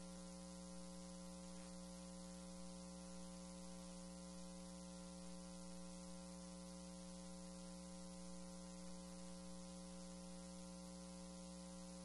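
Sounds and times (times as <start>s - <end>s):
constant hiss: 0.0s - 12.0s
electrical hum: 0.0s - 12.0s.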